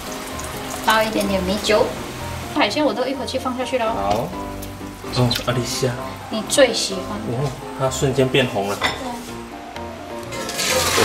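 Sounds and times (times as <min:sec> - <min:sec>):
water pouring through strainer: 0:00.0 - 0:01.3, 0:10.3 - 0:11.0
background music: 0:00.0 - 0:11.0.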